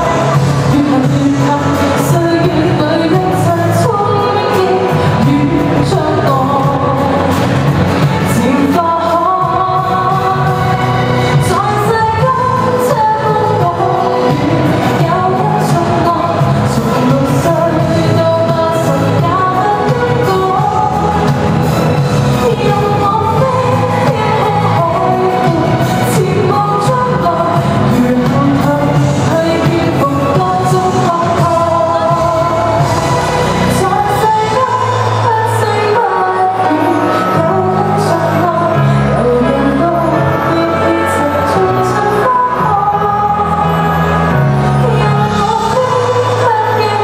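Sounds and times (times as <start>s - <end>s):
pop accompaniment: 0.0s - 47.0s
woman singing into microphone: 0.0s - 47.0s.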